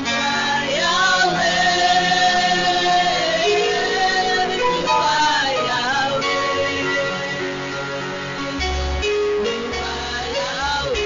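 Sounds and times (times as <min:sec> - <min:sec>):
woman singing into a microphone: 0:00.0 - 0:07.7, 0:09.6 - 0:11.0
backing music: 0:00.0 - 0:11.0.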